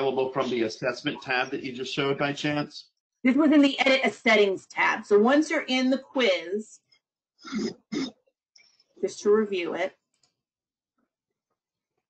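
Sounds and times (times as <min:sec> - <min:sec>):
person clearing throat: 0:07.4 - 0:08.2.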